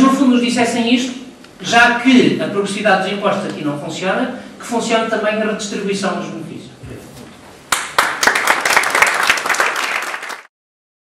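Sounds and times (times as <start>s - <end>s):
audience applauding: 7.7s - 10.5s.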